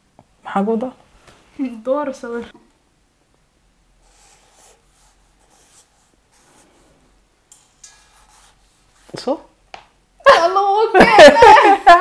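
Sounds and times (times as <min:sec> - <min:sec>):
pen scratching on paper: 0:04.0 - 0:07.0, 0:07.6 - 0:09.2.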